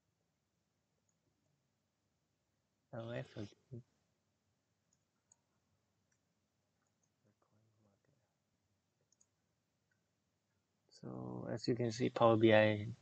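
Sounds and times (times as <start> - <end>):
computer mouse clicks: 4.9 - 5.4, 6.8 - 7.2, 9.0 - 10.0.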